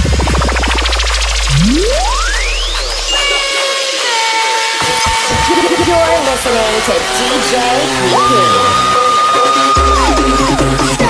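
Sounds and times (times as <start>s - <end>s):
bass: 0.0s - 3.6s, 4.9s - 11.0s
electronic dance music: 0.0s - 11.0s
held synth tones: 1.4s - 9.0s.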